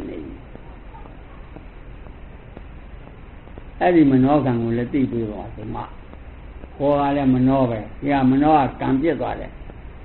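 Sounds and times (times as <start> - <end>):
man speaking: 0.0 - 0.4, 3.8 - 6.0, 6.8 - 9.6
faint ticks: 0.0 - 10.0
recording hiss and hum: 0.0 - 10.0.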